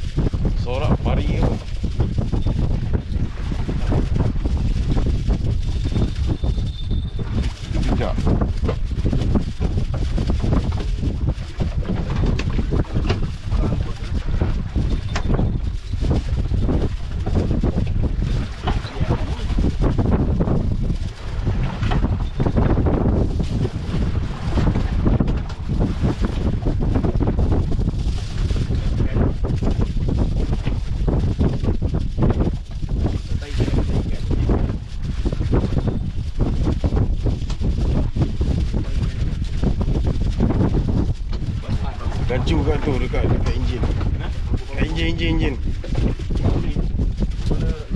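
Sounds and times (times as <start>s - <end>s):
strong wind buffeting microphone: 0.0s - 47.9s.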